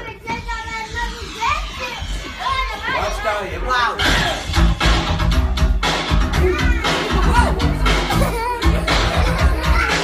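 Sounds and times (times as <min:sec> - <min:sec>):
children calling out excitedly: 0:00.0 - 0:04.4, 0:06.3 - 0:10.0.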